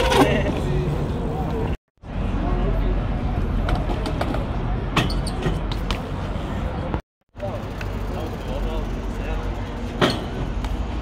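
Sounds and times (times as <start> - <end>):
outdoor crowd chatter: 0.0 - 11.0.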